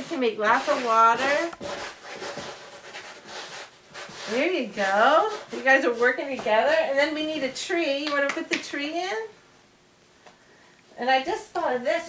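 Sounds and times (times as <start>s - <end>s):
hands scraping sand in plastic tray: 0.0s - 7.0s.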